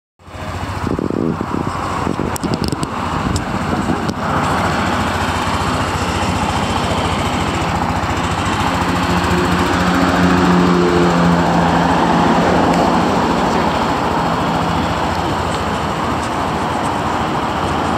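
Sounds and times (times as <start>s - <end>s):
scooter engine idling: 0.2s - 17.9s.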